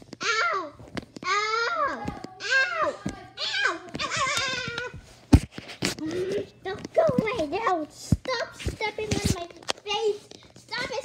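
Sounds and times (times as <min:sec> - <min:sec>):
child crying out: 0:00.2 - 0:05.0.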